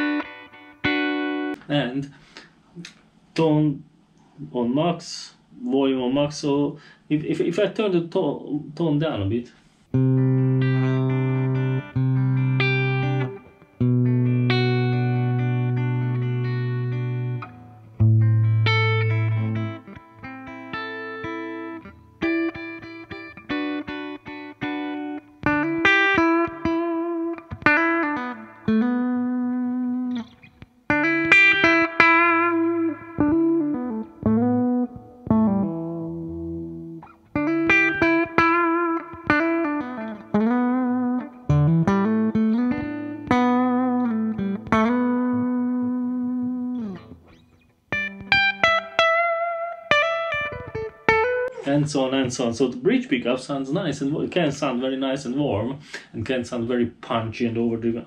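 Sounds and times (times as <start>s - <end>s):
electric guitar solo with bends: 0.0s - 1.7s, 9.9s - 51.7s.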